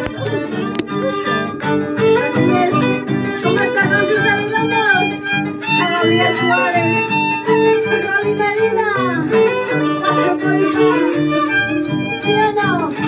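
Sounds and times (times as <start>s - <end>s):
harp plucked bass: 0.0s - 13.0s
violin playing lively melody: 0.0s - 13.0s.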